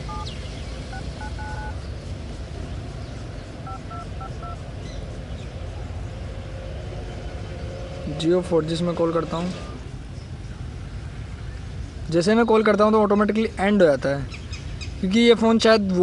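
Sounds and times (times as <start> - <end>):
phone keypad two-tone beeps: 0.0 - 1.8, 3.7 - 4.6.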